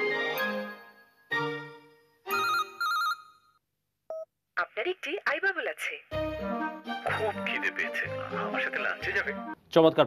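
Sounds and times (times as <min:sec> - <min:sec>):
mobile phone warbling ring: 0:02.3 - 0:03.5
person talking: 0:07.0 - 0:10.0.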